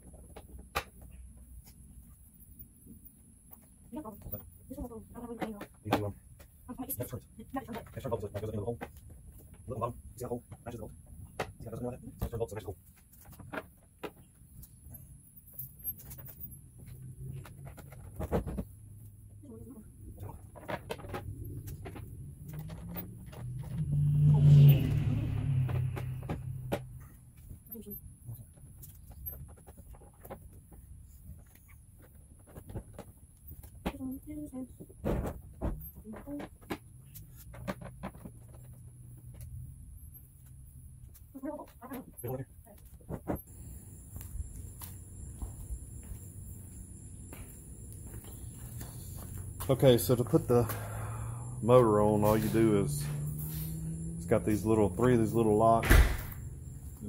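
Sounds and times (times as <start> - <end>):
low rumble: 21.2 - 27.2.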